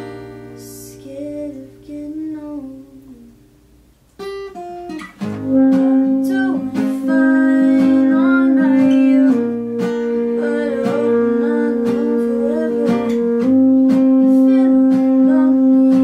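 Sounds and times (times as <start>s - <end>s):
acoustic guitar strumming: 0.0s - 16.0s
saxophone long notes: 5.3s - 16.0s.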